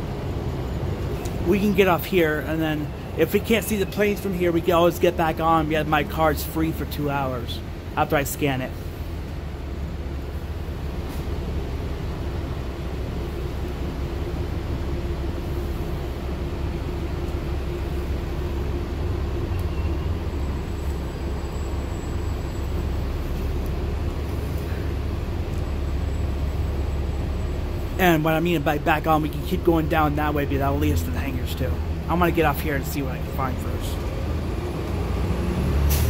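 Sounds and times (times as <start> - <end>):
bus engine and road rumble: 0.0 - 36.0.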